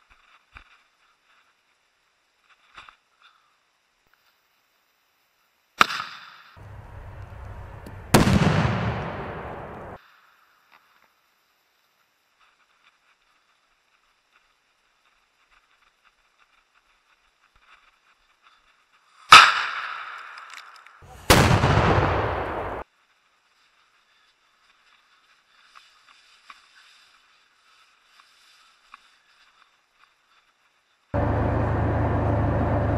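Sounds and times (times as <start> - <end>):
burst of heavy noise: 6.6 - 10.0, 21.0 - 22.8
explosive blasts: 6.6 - 10.0, 21.0 - 22.8
loud bang: 6.6 - 10.0, 21.0 - 22.8.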